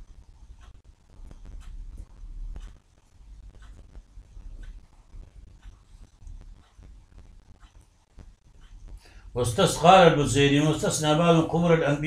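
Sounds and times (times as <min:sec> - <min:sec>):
soft clicks and taps: 0:00.0 - 0:09.2
low room rumble: 0:00.0 - 0:12.0.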